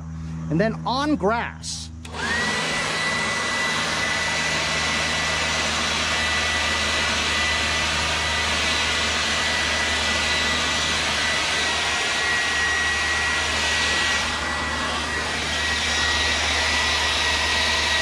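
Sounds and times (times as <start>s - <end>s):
leaf blower running: 2.0s - 18.0s.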